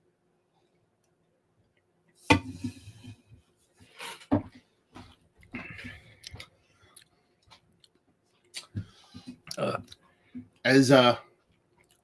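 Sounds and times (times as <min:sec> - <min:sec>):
person sipping and swallowing: 0:05.4 - 0:07.1.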